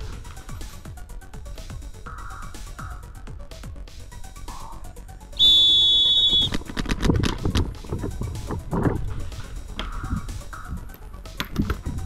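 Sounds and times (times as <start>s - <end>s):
electronic start horn tone: 5.4s - 6.5s.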